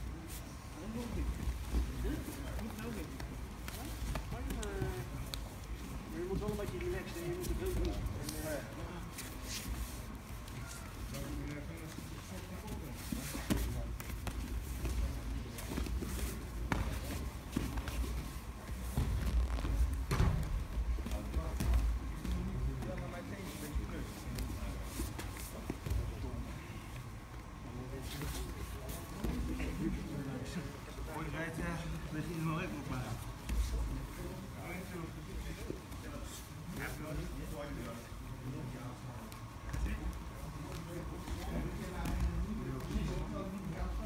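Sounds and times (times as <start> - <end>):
scuffs and shuffles on mats: 0.0 - 44.0
bodies thumping on mats: 18.8 - 22.3.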